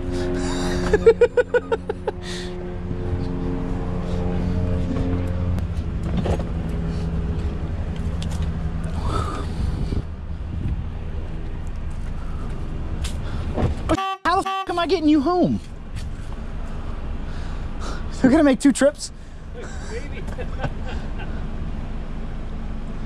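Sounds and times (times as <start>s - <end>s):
car engine idling: 15.1s - 23.0s.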